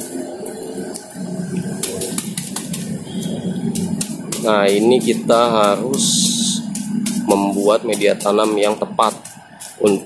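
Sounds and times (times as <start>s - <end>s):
dry planting mix stirred by hand: 1.0s - 10.0s.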